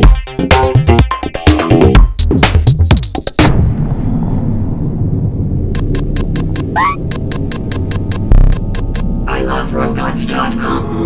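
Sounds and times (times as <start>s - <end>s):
deep rumbling boom: 3.5s - 6.0s
quick ticks: 5.8s - 9.1s
electronic dance music: 6.2s - 7.1s.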